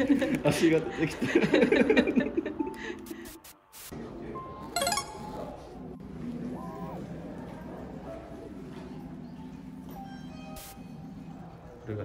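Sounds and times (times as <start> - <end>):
light background music: 4.8 - 5.8.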